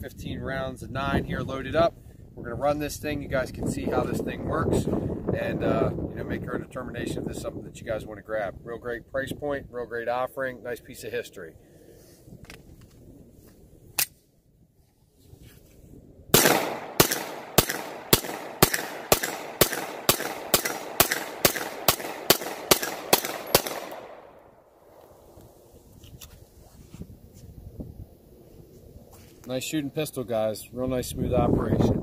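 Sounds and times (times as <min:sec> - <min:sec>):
pistol shots: 0:16.3 - 0:24.4.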